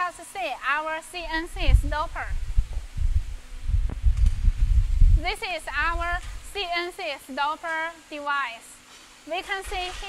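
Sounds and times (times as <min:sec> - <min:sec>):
microphone being jostled: 0:01.3 - 0:06.5.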